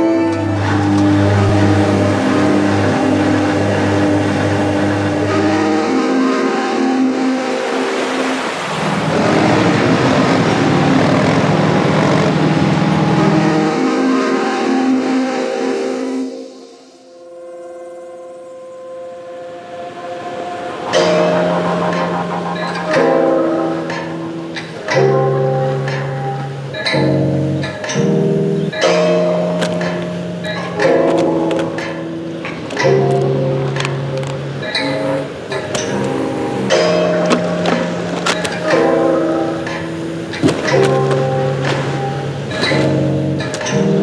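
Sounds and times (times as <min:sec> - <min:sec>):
droning soundtrack music: 0:00.0 - 0:44.0
dense rushing noise: 0:07.4 - 0:13.6, 0:19.4 - 0:25.2.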